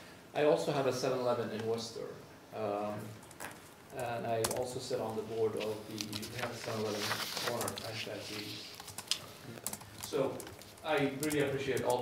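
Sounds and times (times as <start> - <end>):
man talking: 0.4 - 3.2, 3.9 - 12.0.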